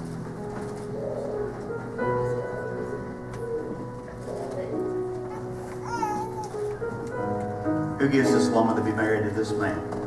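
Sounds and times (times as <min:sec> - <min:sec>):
processional music with held notes: 0:00.0 - 0:10.0.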